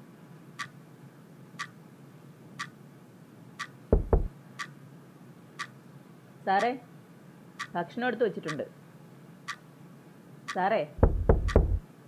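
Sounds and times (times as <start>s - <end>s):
heavy knocks with deep thud: 3.9s - 4.3s, 11.0s - 11.8s
clock ticking: 10.5s - 11.8s.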